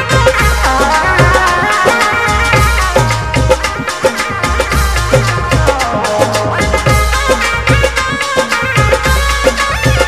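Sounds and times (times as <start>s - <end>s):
bass: 0.0s - 10.0s
drum beat: 0.0s - 10.0s
melody line: 4.8s - 8.0s.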